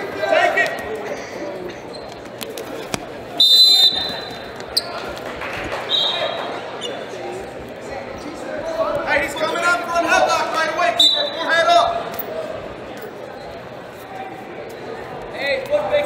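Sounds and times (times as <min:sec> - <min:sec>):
din of a crowded hall: 0:00.0 - 0:16.0
high whistle blasts: 0:03.4 - 0:04.4.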